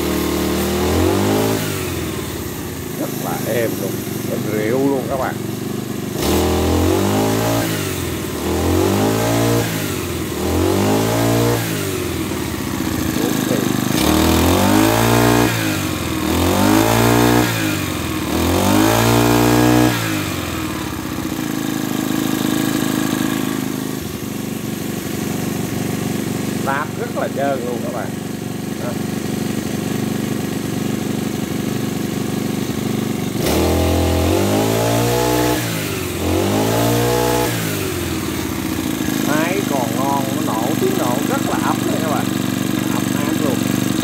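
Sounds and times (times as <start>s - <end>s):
brush cutter engine revving: 0.0s - 44.0s.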